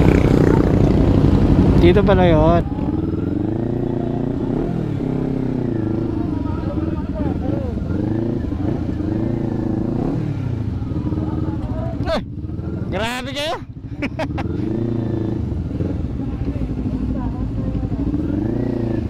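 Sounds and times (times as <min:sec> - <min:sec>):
motorcycle engine revving: 0:00.0 - 0:19.0.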